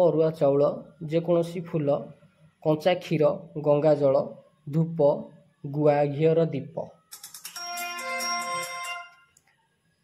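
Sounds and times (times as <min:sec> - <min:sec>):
ringtone with fast trill: 0:06.9 - 0:09.4.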